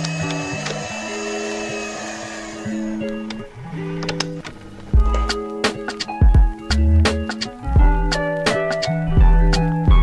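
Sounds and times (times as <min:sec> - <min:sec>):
background music of slow held notes: 0:00.0 - 0:10.0.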